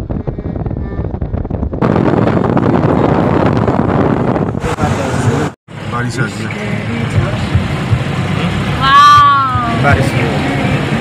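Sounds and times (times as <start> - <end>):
wind buffeting microphone: 0.0 - 5.5
car engine rumble: 0.0 - 11.0
road noise: 0.0 - 11.0.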